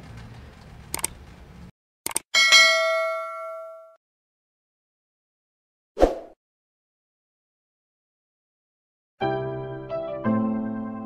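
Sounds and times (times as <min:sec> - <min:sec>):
bell ding: 0:02.4 - 0:04.0.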